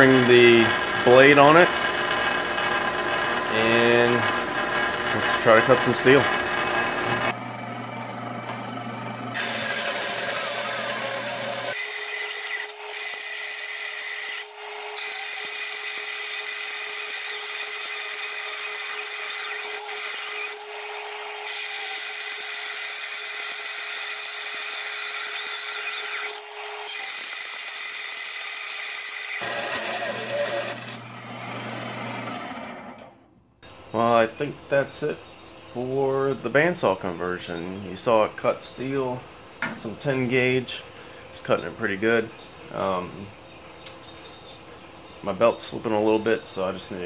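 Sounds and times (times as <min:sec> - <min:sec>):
bandsaw cutting sheet steel: 0:00.0 - 0:07.4, 0:09.3 - 0:33.1
bandsaw running with low hum: 0:00.0 - 0:33.3.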